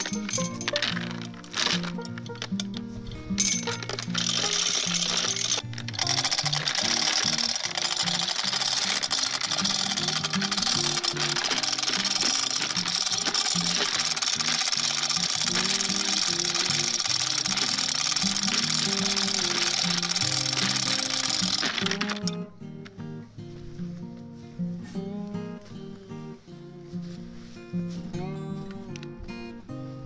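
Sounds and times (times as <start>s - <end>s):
chain clattering through hoist: 0.0s - 2.6s, 3.3s - 22.3s
ratchet pawl clicking: 3.4s - 22.3s.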